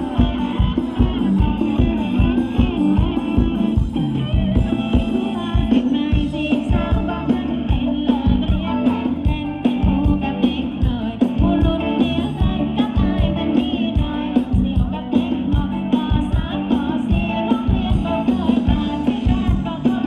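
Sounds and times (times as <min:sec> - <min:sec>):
drum kit beat: 0:00.0 - 0:20.0
live band playing dance music: 0:00.0 - 0:20.0
person singing: 0:00.0 - 0:20.0.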